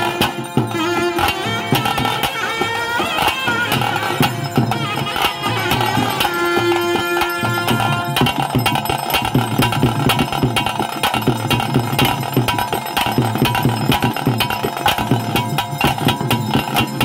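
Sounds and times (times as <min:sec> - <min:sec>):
held wind instrument tone: 0:00.0 - 0:09.0
fast drumming: 0:00.0 - 0:17.0.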